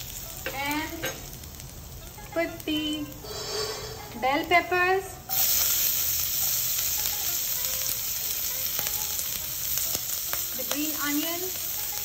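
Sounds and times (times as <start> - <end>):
peppers sizzling in hot oil: 0.0 - 12.0.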